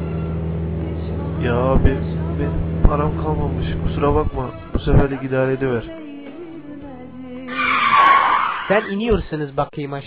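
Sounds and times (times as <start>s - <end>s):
quiet background music: 0.0s - 8.9s
tyres screeching under braking: 7.5s - 9.3s.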